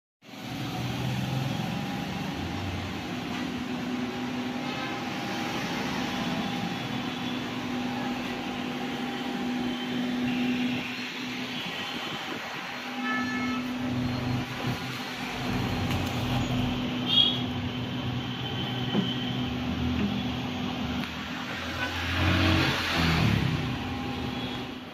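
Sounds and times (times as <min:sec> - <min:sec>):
steady mechanical hum: 0:00.3 - 0:24.9.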